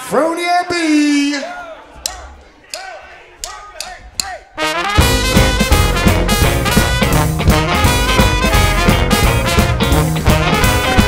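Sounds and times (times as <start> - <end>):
person calling count-in: 2.0 - 4.6
swing band playing: 4.2 - 11.0.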